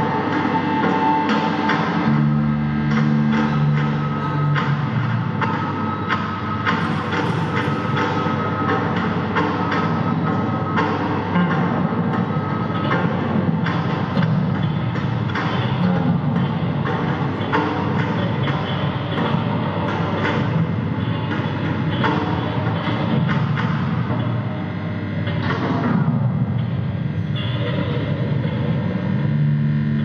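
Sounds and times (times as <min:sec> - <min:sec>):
continuous low noise: 0:00.0 - 0:30.0.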